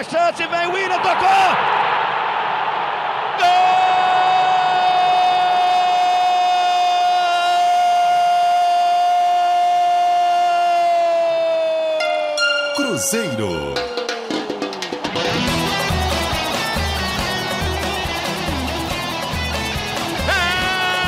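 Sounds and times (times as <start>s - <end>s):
crowd roar: 0.6s - 12.4s, 13.8s - 21.0s
commentator's long goal cry: 20.3s - 21.0s.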